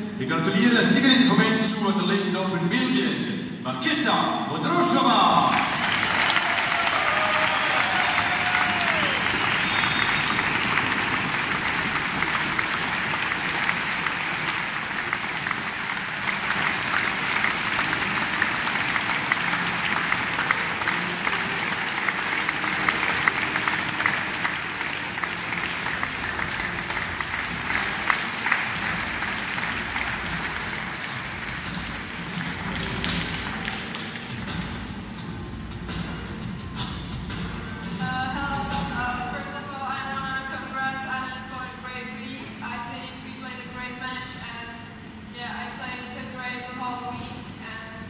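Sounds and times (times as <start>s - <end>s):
audience applauding: 5.2s - 35.0s.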